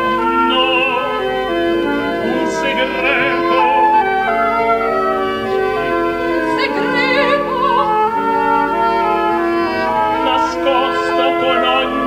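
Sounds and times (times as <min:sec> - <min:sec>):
orchestra sustained chords: 0:00.0 - 0:12.0.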